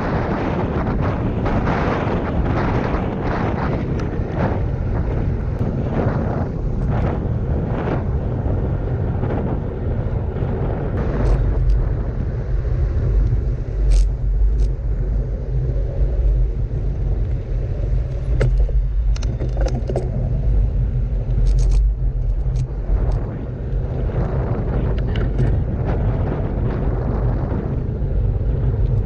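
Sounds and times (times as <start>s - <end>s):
tyres and frame rumble: 0.0s - 29.0s
wind buffeting microphone: 0.0s - 29.0s.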